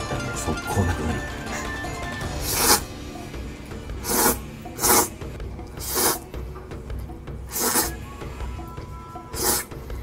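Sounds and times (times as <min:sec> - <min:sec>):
person slurping noodles: 0:02.3 - 0:03.0, 0:03.9 - 0:06.3, 0:07.4 - 0:08.0, 0:09.3 - 0:09.8.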